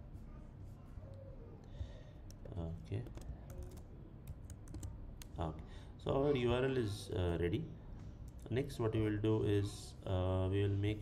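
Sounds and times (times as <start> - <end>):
computer keyboard typing: 3.0 - 5.3.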